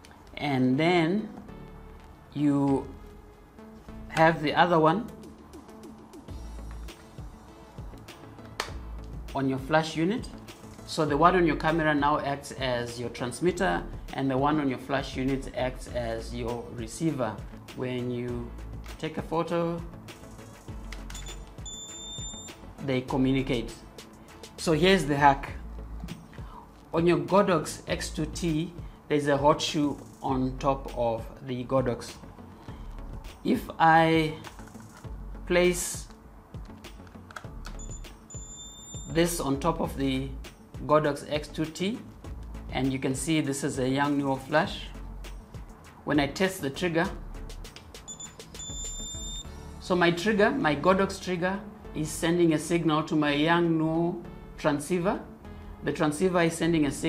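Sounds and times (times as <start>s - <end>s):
background music: 0.0s - 57.0s.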